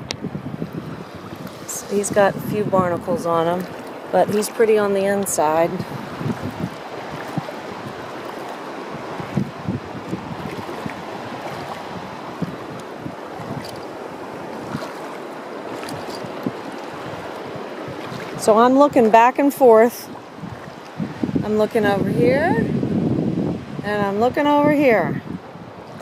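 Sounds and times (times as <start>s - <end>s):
wind rushing: 0.0s - 14.8s, 20.1s - 24.0s
feet wading through water: 0.0s - 21.4s, 25.3s - 26.0s
water lapping: 0.0s - 22.8s, 23.5s - 26.0s.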